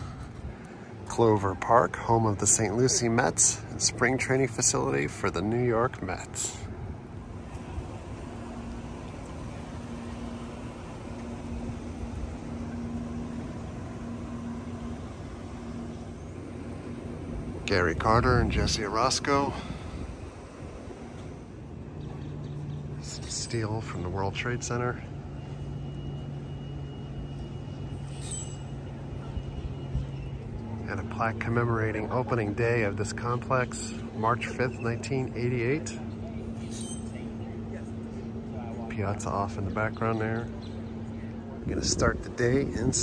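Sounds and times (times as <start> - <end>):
low mechanical hum: 0.0 - 43.0
high squeak: 27.9 - 28.9, 36.6 - 37.2.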